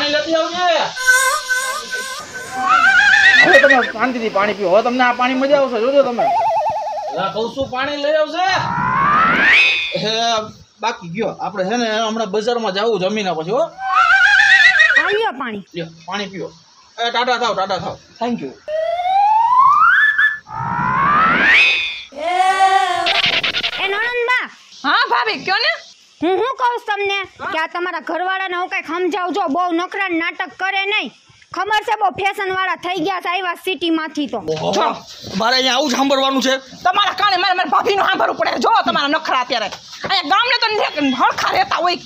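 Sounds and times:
whistle-like rising tone: 0.9s - 3.9s, 6.1s - 7.4s, 8.6s - 10.2s, 18.7s - 22.1s, 23.0s - 23.9s
wavering tone: 1.0s - 3.9s, 6.2s - 7.4s, 8.6s - 10.1s, 18.7s - 22.1s
man speaking animatedly: 3.4s - 6.4s
upward glide with rushing noise: 18.7s - 22.0s.

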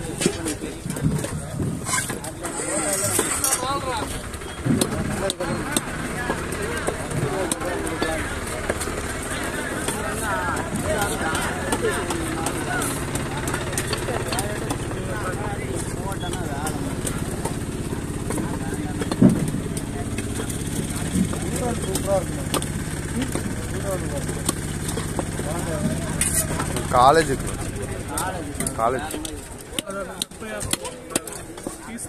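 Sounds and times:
market chatter: 0.0s - 32.0s
low motor hum: 0.1s - 30.4s.

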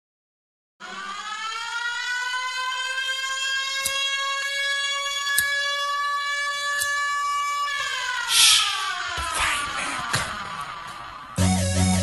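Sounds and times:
siren: 0.8s - 12.0s
loud burst of hiss: 8.3s - 8.9s.

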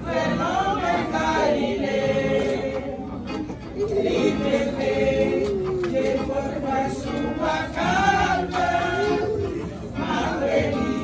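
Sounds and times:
women's choir singing: 0.0s - 11.0s.

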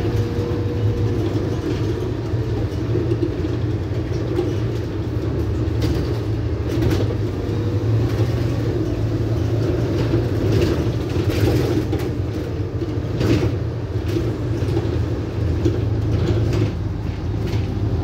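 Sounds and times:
bus engine drone: 0.0s - 18.0s.

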